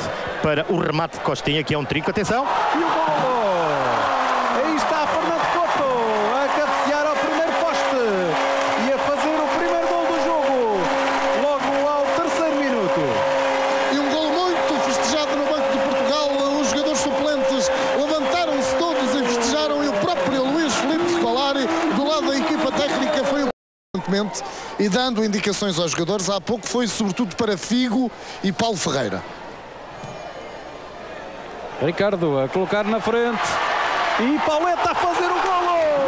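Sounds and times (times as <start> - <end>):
stadium crowd cheering: 0.0 - 28.0, 30.2 - 36.0
horn holding long note: 7.4 - 23.0.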